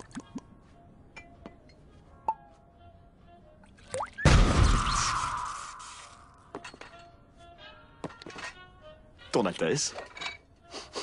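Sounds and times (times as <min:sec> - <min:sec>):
soft music: 0:00.0 - 0:04.4, 0:05.0 - 0:11.0.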